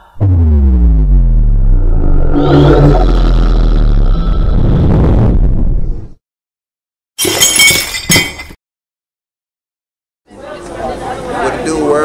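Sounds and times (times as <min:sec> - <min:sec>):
deep bass tone sliding down: 0:00.0 - 0:06.2.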